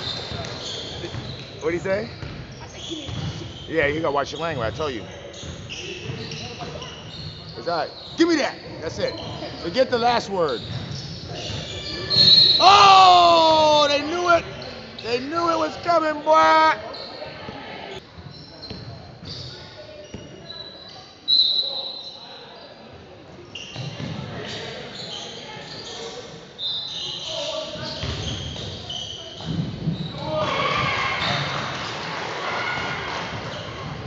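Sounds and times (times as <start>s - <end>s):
sneakers squeaking: 0.0s - 34.0s.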